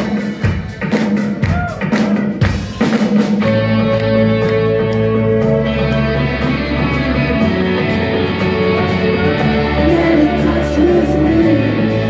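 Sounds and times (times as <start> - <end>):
live rock band playing: 0.0 - 12.0
bending guitar line: 3.4 - 12.0.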